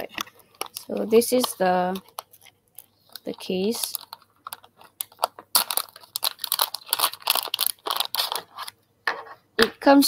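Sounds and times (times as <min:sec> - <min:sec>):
plastic bag crinkling and tearing: 0:00.0 - 0:08.8.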